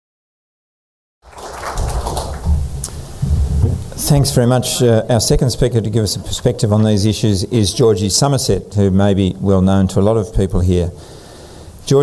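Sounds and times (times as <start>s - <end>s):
microphone handling thumps: 1.8s - 4.0s.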